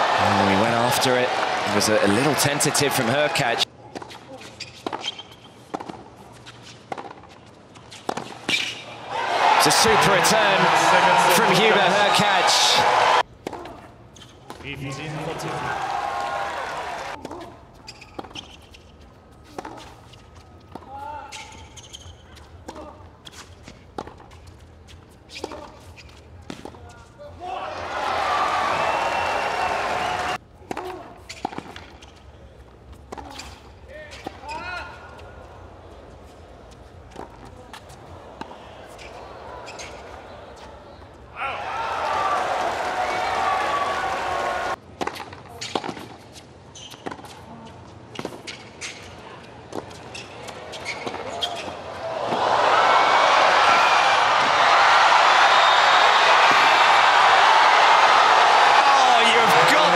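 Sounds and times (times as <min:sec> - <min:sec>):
crowd cheering and applauding: 0:00.0 - 0:03.6, 0:09.1 - 0:13.2, 0:15.0 - 0:17.2, 0:27.6 - 0:30.4, 0:41.5 - 0:44.8, 0:52.1 - 0:59.9.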